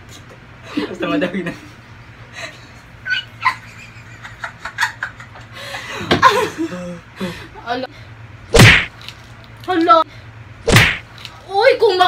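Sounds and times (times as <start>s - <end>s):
high-pitched squeals of laughter: 3.0s - 3.8s.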